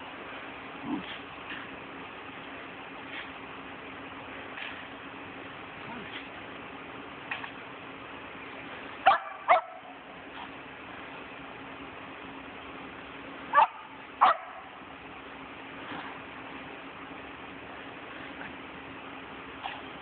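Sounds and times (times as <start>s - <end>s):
dog barking: 9.0s - 10.0s, 13.5s - 14.7s.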